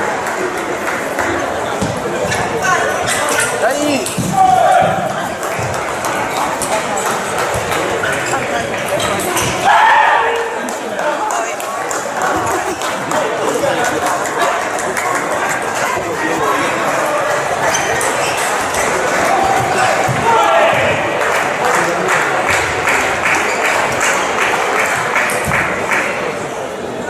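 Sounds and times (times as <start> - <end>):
many voices talking: 0.0 - 27.0.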